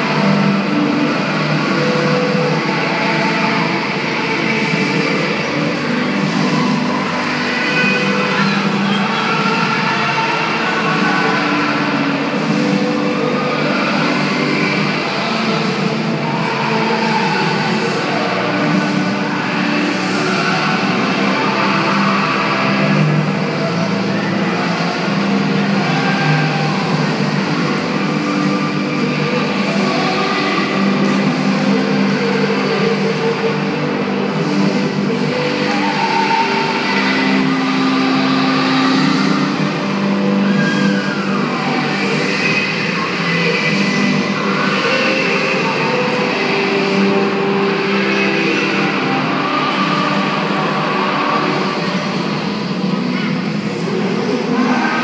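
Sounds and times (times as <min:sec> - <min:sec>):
music in echoing hall: 0:00.0 - 0:55.0.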